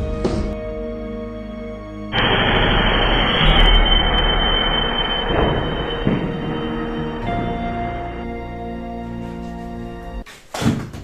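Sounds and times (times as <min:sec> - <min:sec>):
background music: 0:00.0 - 0:02.2, 0:04.5 - 0:10.2.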